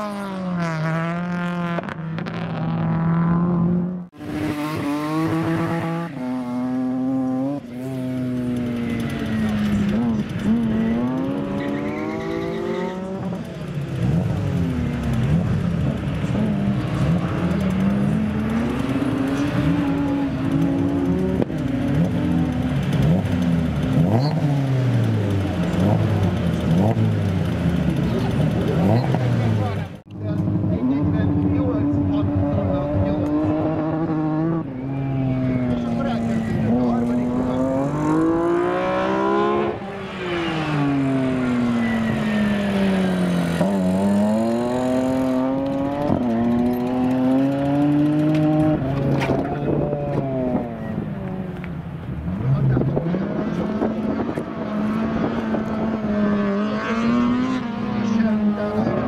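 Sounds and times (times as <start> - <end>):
car engine revving hard: 0.0 - 29.9, 30.6 - 51.4, 52.2 - 59.0.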